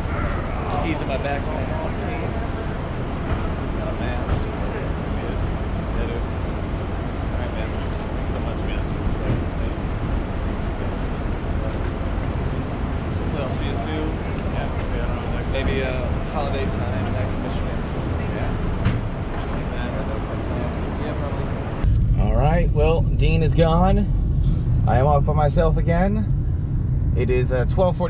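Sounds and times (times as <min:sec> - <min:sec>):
indistinct voices: 0:00.0 - 0:26.4, 0:27.0 - 0:28.0
traffic rumble: 0:00.0 - 0:28.0.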